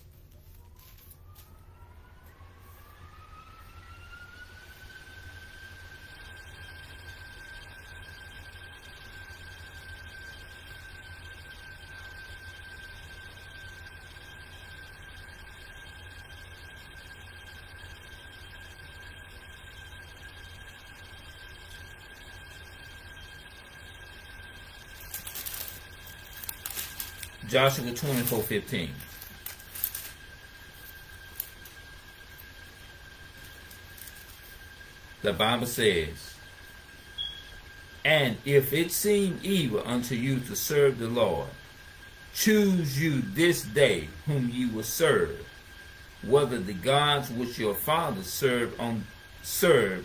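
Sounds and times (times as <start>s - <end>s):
low hum: 0.0s - 50.0s
high whistling tone: 0.4s - 41.5s.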